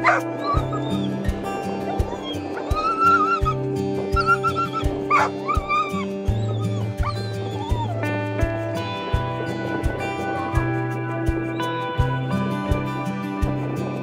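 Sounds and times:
dog whining: 0.0 - 8.6
dog yelping: 0.0 - 8.6
background music with steady beat: 0.0 - 14.0.

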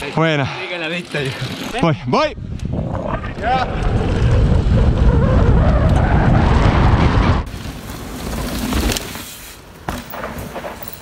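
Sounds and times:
wind rushing on microphone: 1.8 - 7.5.

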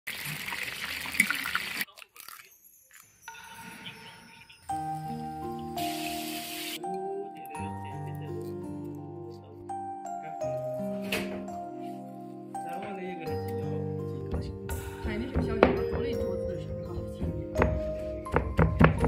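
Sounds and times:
music with held notes: 2.7 - 19.0.

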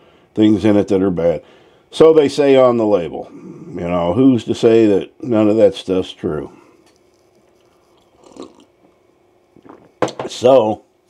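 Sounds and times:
person sipping a drink: 6.7 - 10.0
faint mouth sound: 7.6 - 8.8, 9.6 - 10.0.

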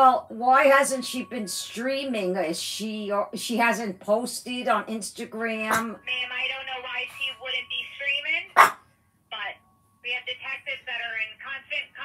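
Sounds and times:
dog barking: 5.7 - 5.9, 8.6 - 8.8.

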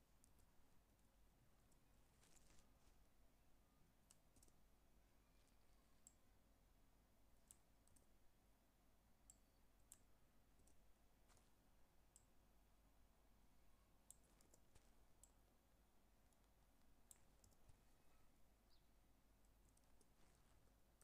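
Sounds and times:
computer mouse and keyboard clicks: 4.1 - 4.6, 14.1 - 15.4, 17.1 - 17.8.

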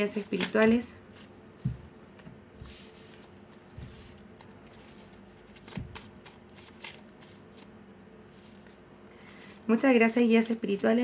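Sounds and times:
cards rustling: 0.0 - 1.3, 2.7 - 7.7, 8.3 - 9.7.

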